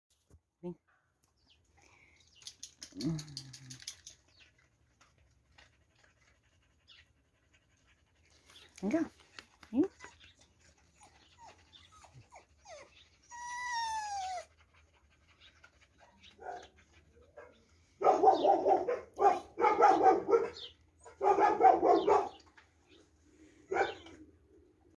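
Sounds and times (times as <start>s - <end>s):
dog whining: 11.0s - 14.7s
dogs barking: 16.4s - 16.8s, 17.4s - 22.4s, 23.7s - 24.2s.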